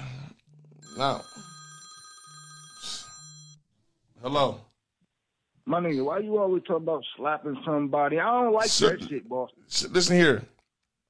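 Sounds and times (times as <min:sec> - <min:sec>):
phone ring tone: 0:00.8 - 0:03.6.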